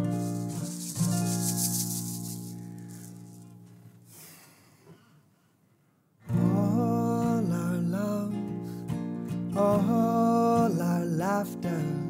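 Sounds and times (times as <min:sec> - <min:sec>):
shaker rattling: 0:00.0 - 0:03.6.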